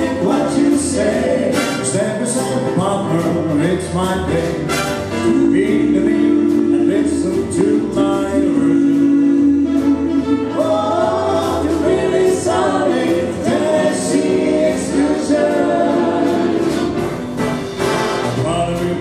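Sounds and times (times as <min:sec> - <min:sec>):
vocal group singing in harmony: 0:00.0 - 0:03.4, 0:04.2 - 0:17.3
swing big band playing: 0:00.0 - 0:19.0.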